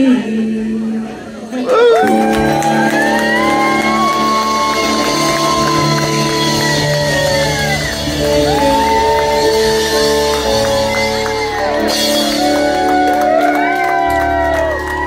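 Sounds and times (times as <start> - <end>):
held lead guitar notes: 2.0 - 15.0
live rock band playing: 2.0 - 15.0.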